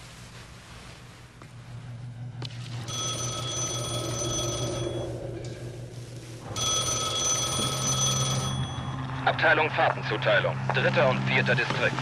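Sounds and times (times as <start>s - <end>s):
steady low hum: 0.0s - 12.0s
desk telephone ringing: 2.8s - 5.3s, 6.4s - 9.1s.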